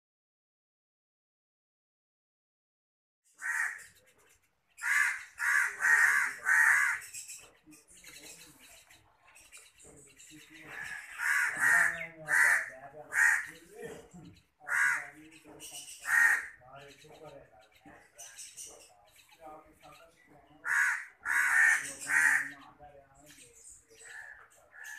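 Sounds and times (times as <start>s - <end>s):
shrike harsh grating calls: 3.4s - 4.0s, 4.8s - 7.4s, 10.6s - 13.8s, 14.6s - 17.1s, 20.6s - 22.7s.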